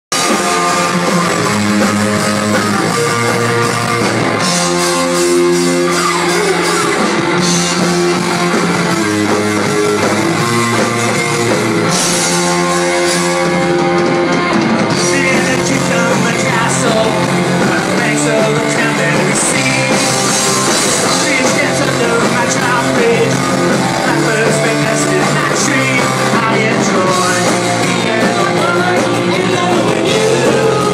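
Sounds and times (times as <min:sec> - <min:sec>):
electric guitar chords: 0:00.1 - 0:30.9
rock band playing live: 0:00.1 - 0:30.9
person singing: 0:14.9 - 0:30.9.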